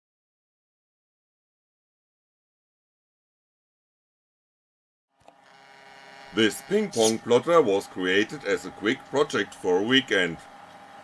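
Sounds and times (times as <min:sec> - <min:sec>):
stepper motors humming: 0:05.2 - 0:11.0.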